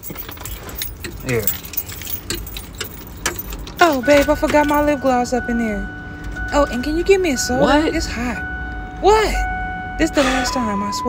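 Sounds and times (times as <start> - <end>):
light clicks and jingling rattles: 0.0 - 5.2.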